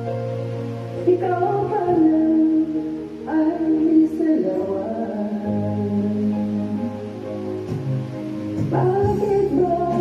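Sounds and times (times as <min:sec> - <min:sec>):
backing music with held chords: 0:00.0 - 0:10.0
woman singing into microphone: 0:01.0 - 0:07.2, 0:08.6 - 0:10.0.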